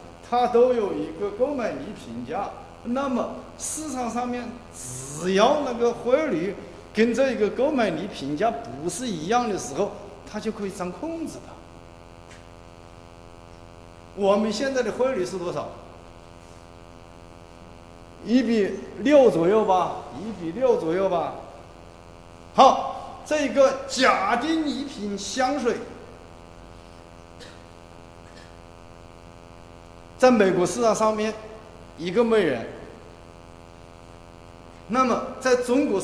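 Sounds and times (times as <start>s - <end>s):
electrical mains hum: 0.0s - 36.0s.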